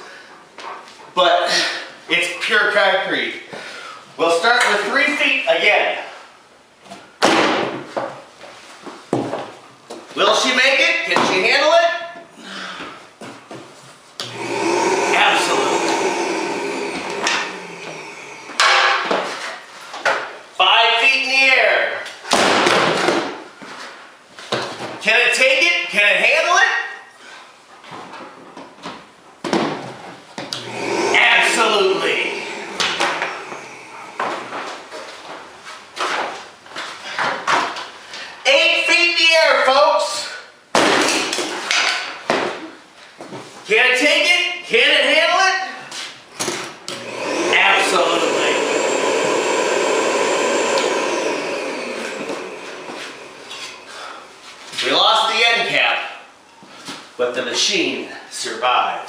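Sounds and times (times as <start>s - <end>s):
ozone generator motor humming: 14.2s - 19.0s, 30.6s - 35.0s, 47.0s - 54.4s
short voice: 14.2s - 19.1s
loud bursts of noise: 14.2s - 19.2s, 30.6s - 35.0s, 47.0s - 54.4s.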